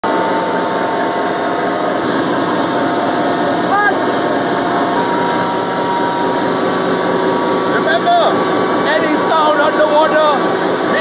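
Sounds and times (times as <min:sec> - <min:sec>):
faint steady tones: 0:00.0 - 0:11.0
loud machinery drone: 0:00.0 - 0:11.0.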